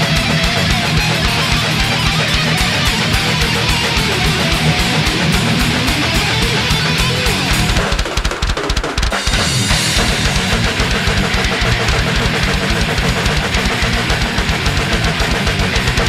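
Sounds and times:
heavy guitar: 0.0s - 16.0s
rapid kick drum strokes: 0.0s - 16.0s
cymbals: 9.0s - 16.0s.

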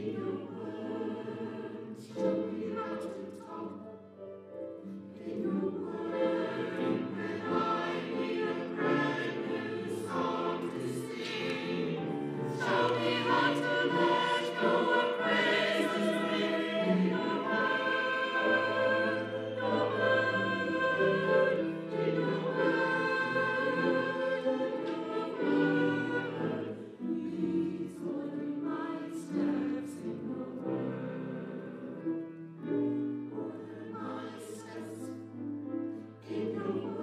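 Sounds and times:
choir singing in harmony: 0.0s - 37.0s.

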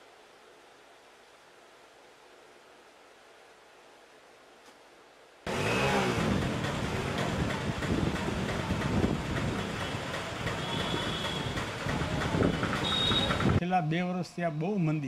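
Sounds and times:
faint steady hiss: 0.0s - 5.5s
motor vehicles passing: 5.5s - 13.6s.

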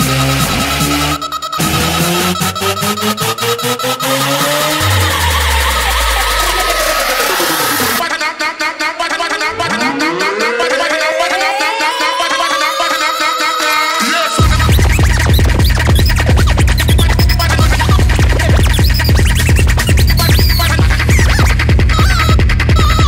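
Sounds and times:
electronic dance music with effects: 0.0s - 23.0s
fast high stuttering pattern: 0.0s - 23.0s
downward sweep effect: 1.6s - 8.0s, 9.4s - 13.2s.

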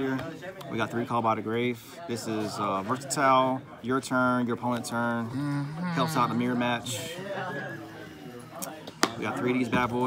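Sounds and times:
man murmuring: 5.2s - 7.2s.

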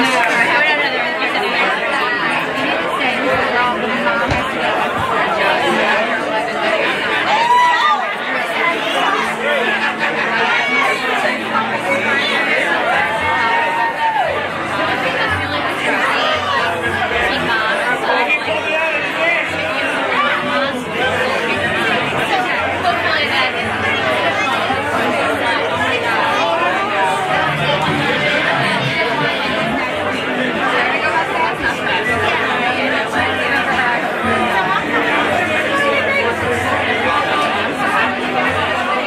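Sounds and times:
crowd chatter: 0.0s - 39.0s.

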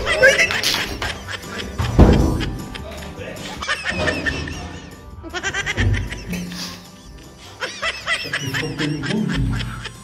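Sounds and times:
high-pitched cackling laughter: 0.0s - 2.8s, 3.5s - 6.8s, 7.4s - 10.0s
background music: 0.0s - 10.0s.

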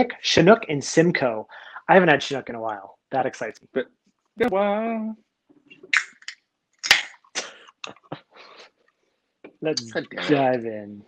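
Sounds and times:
man coughing: 9.8s - 10.8s.

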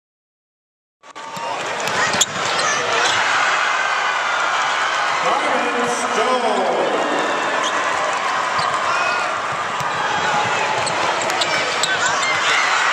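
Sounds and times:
arena crowd noise: 1.0s - 12.9s
basketball bouncing on court: 1.3s - 3.2s, 8.5s - 12.7s.

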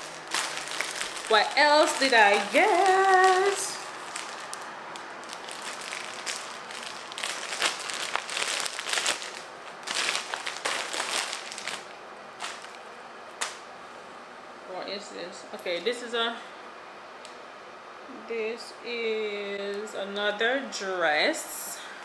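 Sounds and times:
plastic garment bag crinkling: 0.0s - 13.6s.

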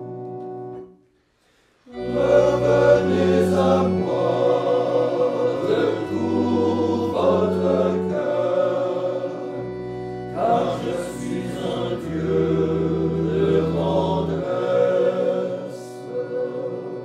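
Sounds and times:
male choir singing: 1.9s - 17.0s.

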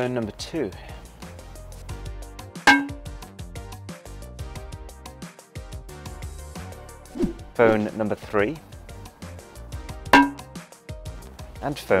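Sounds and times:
background music with beat: 0.5s - 11.8s
hammer hitting glass: 10.2s - 10.4s.

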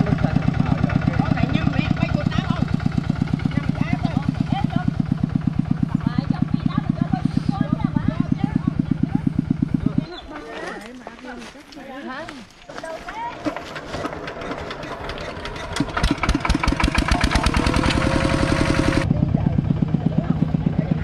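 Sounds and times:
diesel engine idling: 0.0s - 10.9s, 13.2s - 21.0s.

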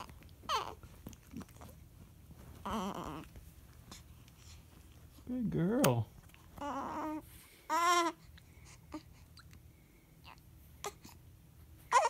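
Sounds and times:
newborn baby fussing cries: 0.0s - 0.9s, 2.6s - 3.3s, 6.6s - 9.5s, 10.2s - 11.3s.

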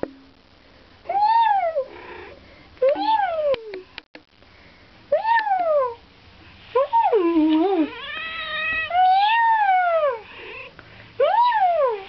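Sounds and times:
cat meowing: 7.8s - 9.9s.

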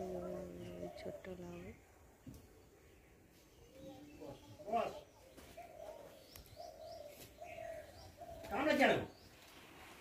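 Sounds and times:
faint high bird chirps: 0.0s - 9.9s
dove cooing: 4.5s - 8.5s.

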